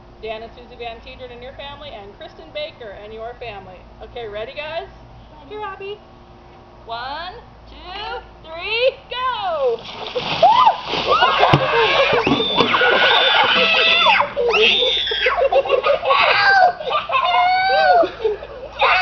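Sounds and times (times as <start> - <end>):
ice water splashing: 9.8 - 14.2
group shrieking and screaming: 10.4 - 19.0.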